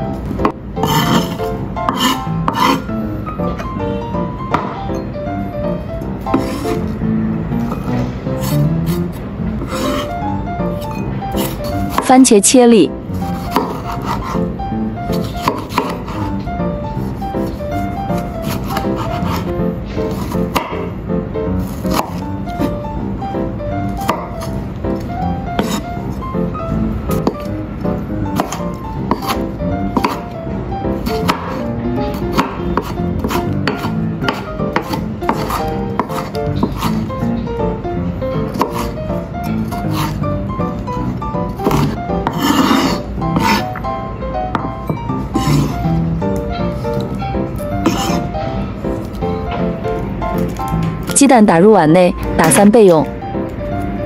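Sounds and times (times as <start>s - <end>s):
background music: 0.0s - 54.0s
knife chopping on wooden board: 0.4s - 2.8s, 4.5s - 4.8s, 6.3s - 6.8s, 11.3s - 12.1s, 13.3s - 14.4s, 15.1s - 16.3s, 18.2s - 20.9s, 21.6s - 22.8s, 24.0s - 24.6s, 25.6s - 25.8s, 27.1s - 27.5s, 28.3s - 30.4s, 31.0s - 37.1s, 38.5s - 40.2s, 41.5s - 43.7s, 44.5s - 45.8s, 47.8s - 48.2s.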